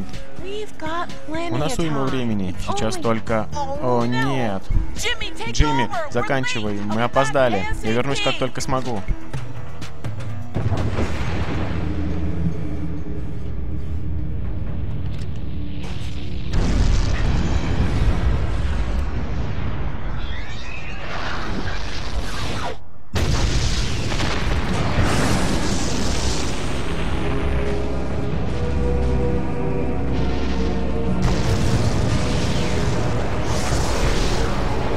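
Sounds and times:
dramatic cartoon music: 0.0s - 34.9s
deep rumbling booms: 23.2s - 34.9s.

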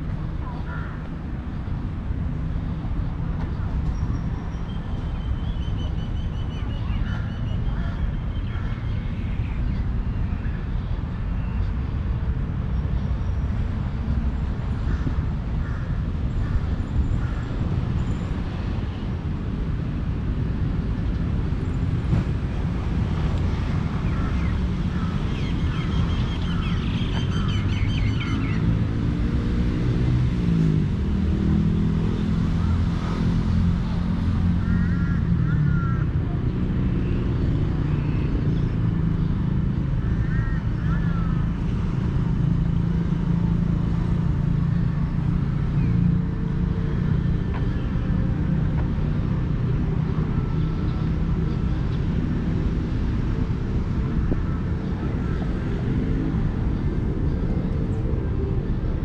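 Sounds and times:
traffic engine drone: 0.0s - 59.0s.

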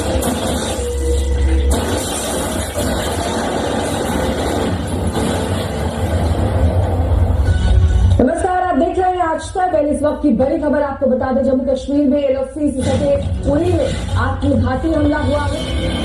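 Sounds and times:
film score music: 0.0s - 9.0s.

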